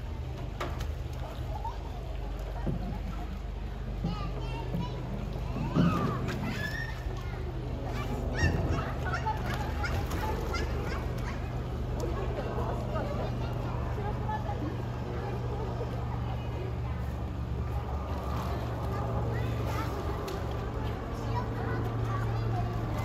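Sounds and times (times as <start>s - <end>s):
indistinct chatter: 0.0s - 23.0s
steady low hum: 0.0s - 23.0s.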